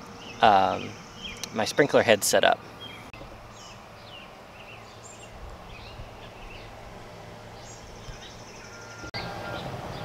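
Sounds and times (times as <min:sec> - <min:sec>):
faint bird chirps: 0:07.6 - 0:10.0.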